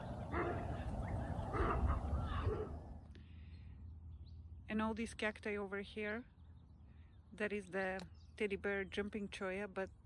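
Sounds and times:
quail calling: 0.0 - 2.8.

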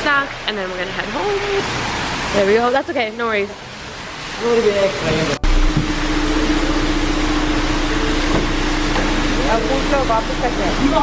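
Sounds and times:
electric motor hum: 5.1 - 11.0.

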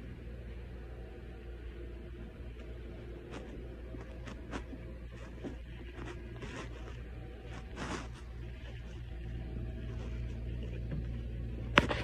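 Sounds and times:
scratchy rubbing sounds: 3.0 - 10.7.

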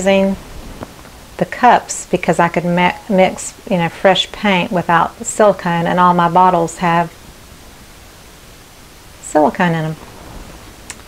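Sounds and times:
low steady hiss: 0.0 - 11.0.

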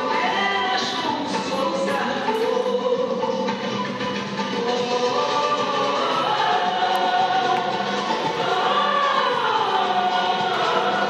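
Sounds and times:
choir singing long held notes: 4.6 - 11.0.

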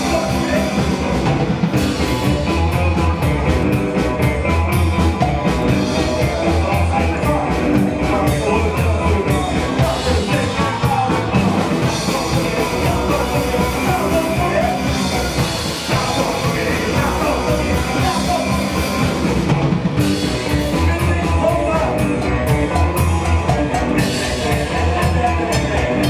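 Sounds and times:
drum kit beat: 0.0 - 26.0
electric guitar: 0.0 - 26.0
upright double bass: 0.0 - 26.0.

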